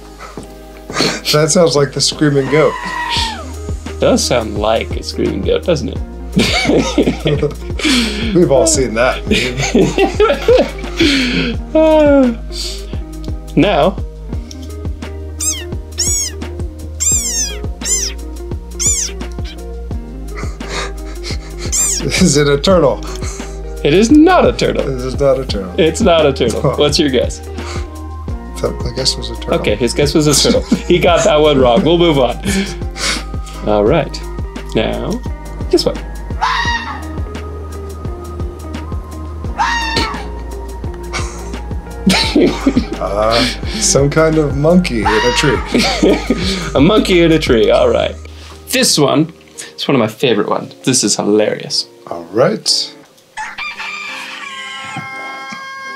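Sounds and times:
background music: 0.0 - 55.9
frog squeaking shrilly: 2.4 - 3.6, 15.4 - 19.7, 21.6 - 22.1, 36.4 - 37.2, 39.6 - 40.3
fox barking: 15.4 - 16.4, 17.0 - 18.2, 18.8 - 19.6.

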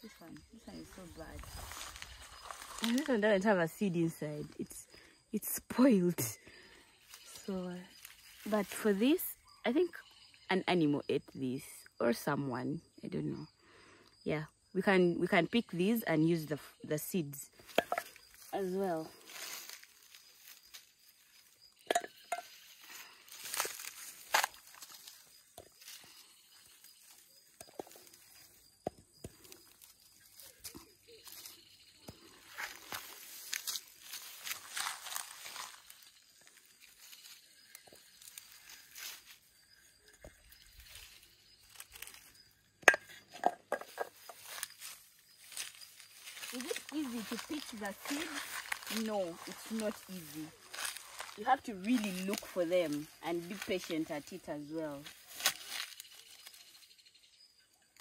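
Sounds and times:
rustling grass and dry leaves: 0.0 - 10.4, 16.3 - 58.0
footsteps: 43.4 - 54.3.

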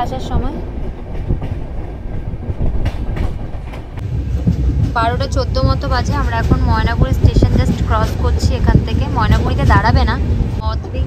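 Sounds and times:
train wheels rumbling on rails: 0.0 - 11.0.

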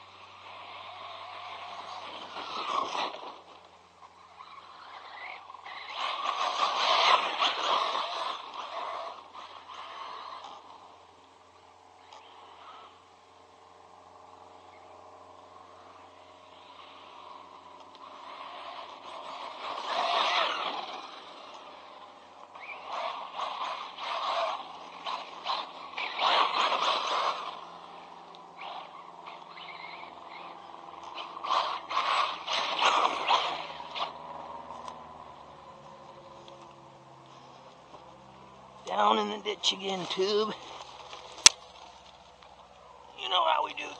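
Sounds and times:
rc truck driving over dirt: 0.0 - 43.9.

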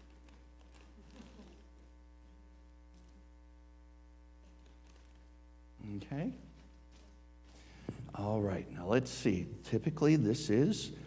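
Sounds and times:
low electrical mains hum: 0.0 - 11.0.

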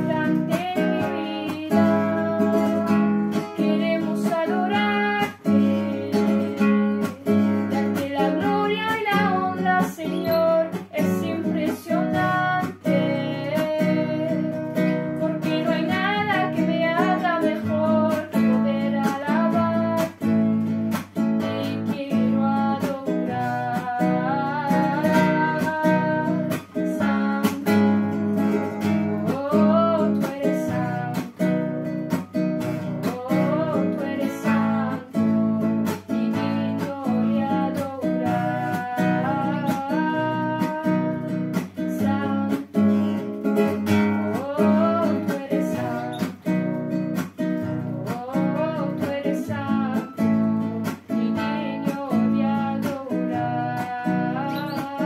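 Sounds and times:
acoustic guitar strumming: 0.0 - 55.0
girl singing: 0.0 - 55.0.

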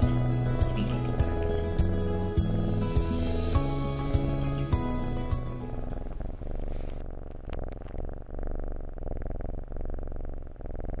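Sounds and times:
kitten purring: 0.0 - 2.6, 3.3 - 11.0
background music: 0.0 - 6.2.

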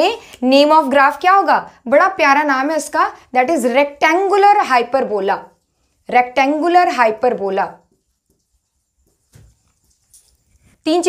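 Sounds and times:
woman speaking: 0.0 - 7.9
marker squeaking on whiteboard: 5.4 - 10.8.

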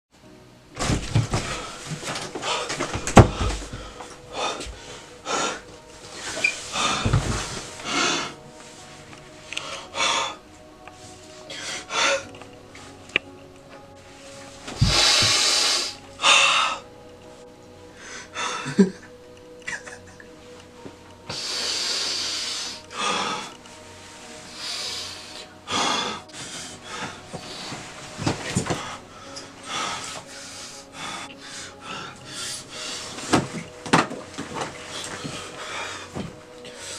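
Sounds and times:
man breathing heavily: 0.8 - 13.0, 13.7 - 16.9, 17.8 - 19.1, 21.3 - 36.9.

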